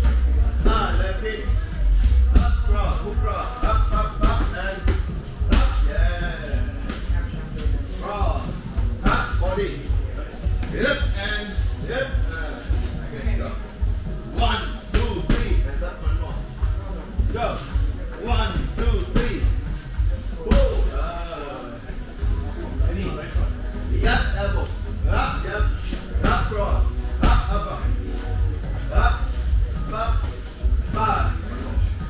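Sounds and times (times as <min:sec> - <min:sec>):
music with pulsing bass: 0:00.0 - 0:21.1, 0:22.2 - 0:32.0
voice: 0:00.6 - 0:09.9, 0:10.6 - 0:13.6, 0:14.3 - 0:19.6, 0:20.4 - 0:28.0, 0:28.8 - 0:30.3.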